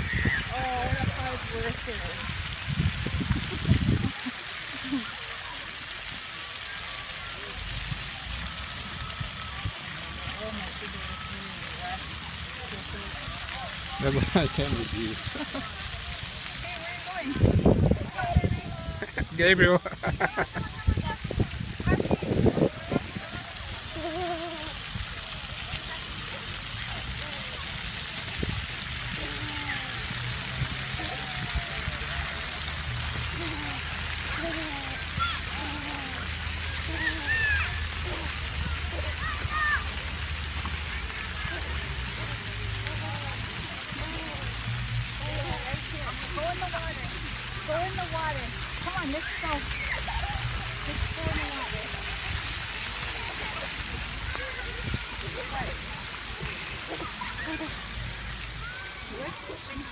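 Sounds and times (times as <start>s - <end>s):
faint voices: 0.0s - 59.9s
water jets spraying: 0.0s - 59.9s.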